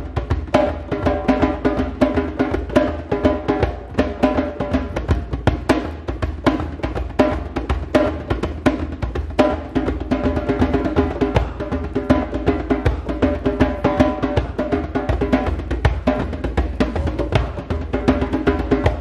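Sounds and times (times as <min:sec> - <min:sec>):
hand drum fast rhythm: 0:00.0 - 0:19.0.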